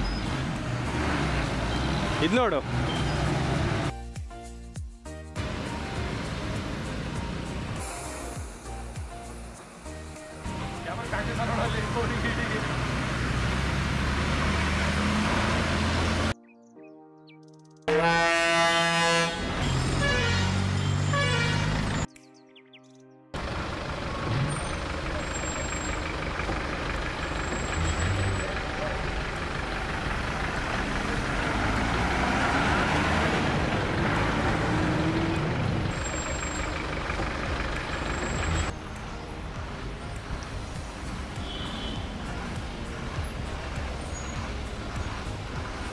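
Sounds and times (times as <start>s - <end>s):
bus engine labouring: 0.0s - 3.9s, 5.4s - 16.4s, 18.0s - 22.1s, 23.4s - 45.9s
bus horn: 17.9s - 22.0s, 41.4s - 42.6s.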